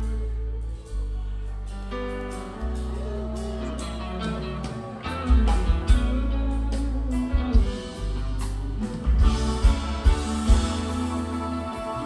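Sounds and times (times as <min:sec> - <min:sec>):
drums: 0:00.0 - 0:12.0
electric guitar: 0:00.0 - 0:12.0
heavy bass line: 0:00.0 - 0:12.0.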